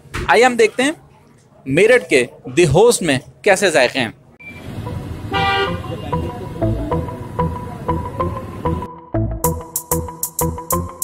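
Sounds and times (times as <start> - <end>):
car horn toot: 4.4 - 6.6
electronic music with steady beat: 4.9 - 11.0.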